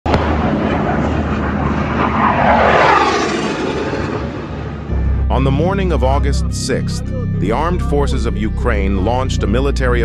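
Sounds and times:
aircraft passing overhead: 0.1 - 9.7.

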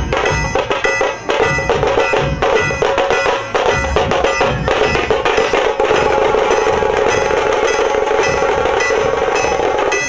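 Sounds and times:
droning note: 0.0 - 10.0
hand drums: 0.0 - 10.0
metallic ringing strike: 0.0 - 10.0.

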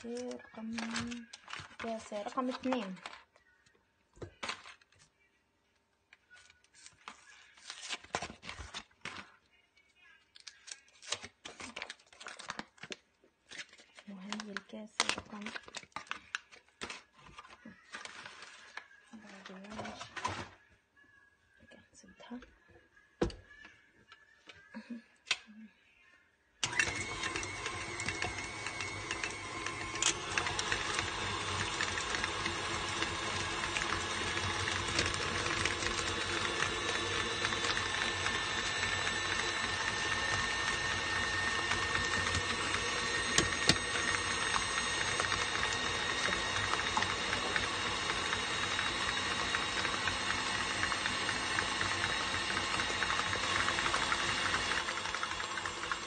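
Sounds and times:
stand mixer whining: 26.6 - 56.0.

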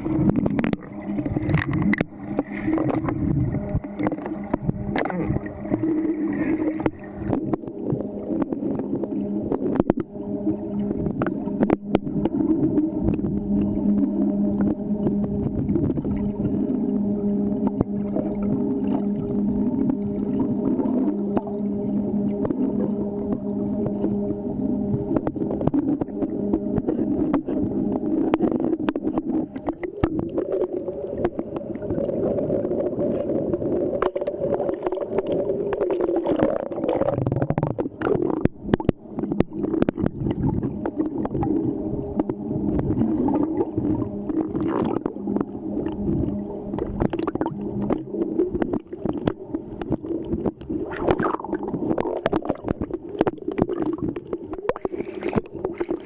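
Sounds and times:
muffled underwater rumble: 0.0 - 56.0
steady hum: 0.0 - 56.0.

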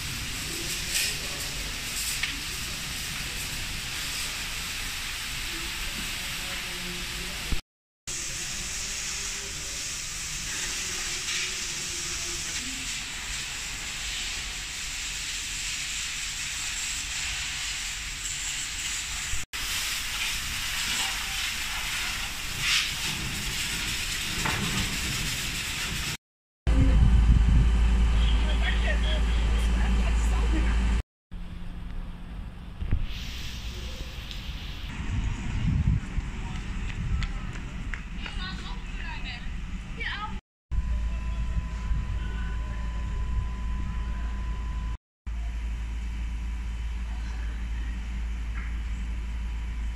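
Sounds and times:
faint fire crackles: 0.0 - 7.6
fire hose water hissing: 0.0 - 26.2, 32.9 - 35.5
loud low rumble: 26.7 - 33.0, 34.9 - 38.2, 40.7 - 49.9.

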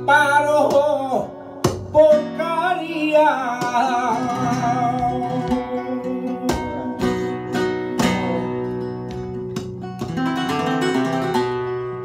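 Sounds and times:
man singing melismatic line: 0.0 - 9.1
acoustic guitar accompaniment: 0.0 - 12.0.

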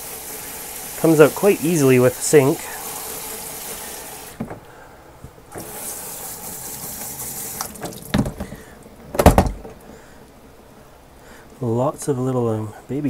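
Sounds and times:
water spray hissing into sink: 0.0 - 4.4, 5.6 - 8.0.

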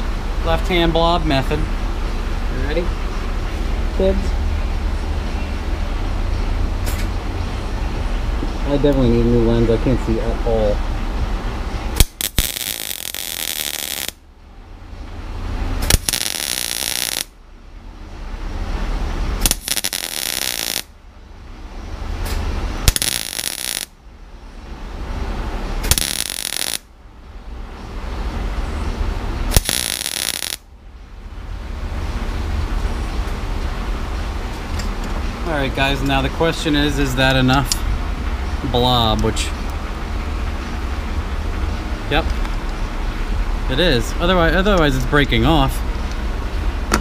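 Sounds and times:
welder arc crackling: 11.9 - 14.2, 15.8 - 17.4, 19.4 - 20.9, 22.8 - 24.0, 25.8 - 26.9, 29.5 - 30.7.

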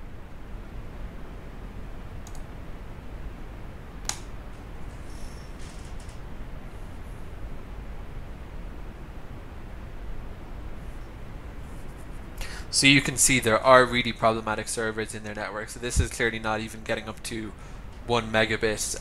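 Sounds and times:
low room hum: 0.0 - 19.0
microphone hiss: 0.0 - 19.0
computer mouse clicks: 2.2 - 2.5, 4.0 - 4.3.

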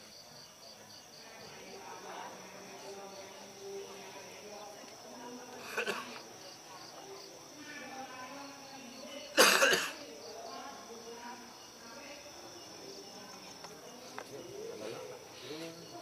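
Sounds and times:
crickets chirping: 0.0 - 16.0
faint murmuring voices: 0.0 - 16.0
loud short cough: 9.4 - 10.0.

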